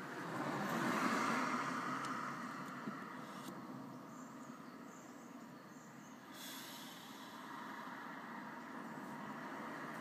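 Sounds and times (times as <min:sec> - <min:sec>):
road vehicle noise: 0:00.0 - 0:10.0
hiss: 0:06.3 - 0:07.7.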